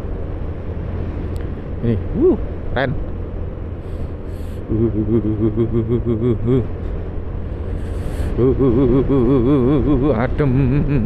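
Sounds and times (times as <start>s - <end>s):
wind rumble: 0.0s - 11.0s
person humming wavering tone: 4.6s - 6.7s, 8.3s - 11.0s.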